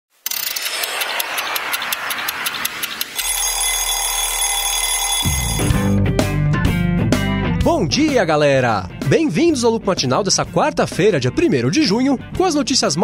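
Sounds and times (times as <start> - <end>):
alarm clock ringing: 0.3 - 6.0
music: 5.2 - 13.0.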